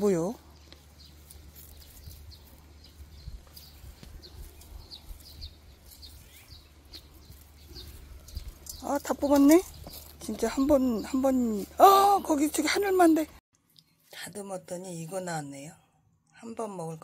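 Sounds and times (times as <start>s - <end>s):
small birds chirping: 0.0s - 14.1s.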